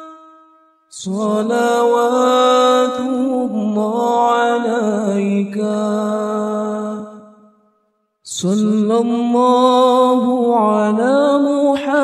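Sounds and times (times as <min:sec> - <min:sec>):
person singing unaccompanied: 0:00.0 - 0:07.3, 0:08.3 - 0:12.0.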